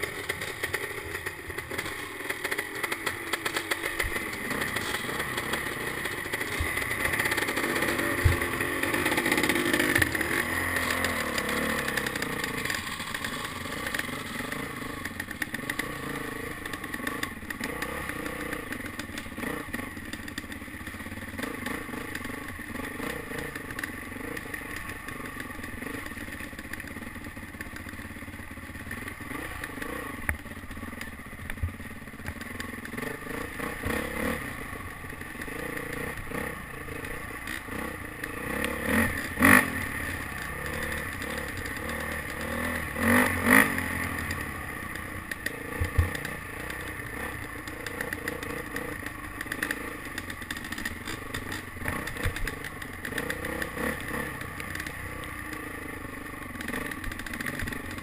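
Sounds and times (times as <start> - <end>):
bike knocking and clattering: 0.0 - 15.9
dirt bike engine revving: 0.0 - 27.0, 31.6 - 58.0.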